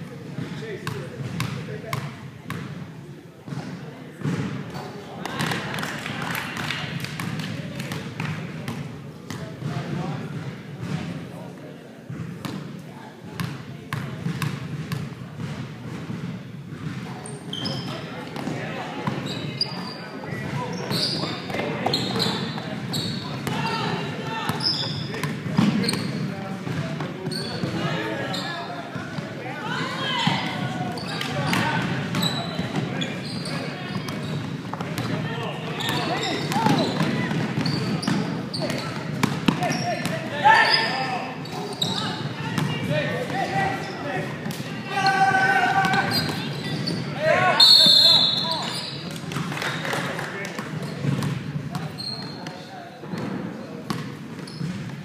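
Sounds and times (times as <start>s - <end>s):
sneakers squeaking: 12.1s - 50.0s, 50.7s - 55.0s.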